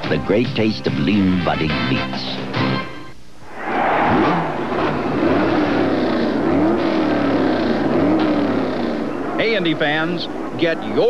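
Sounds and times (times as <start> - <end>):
steady rush of noise: 3.1 - 6.8
race car engines: 3.5 - 11.0.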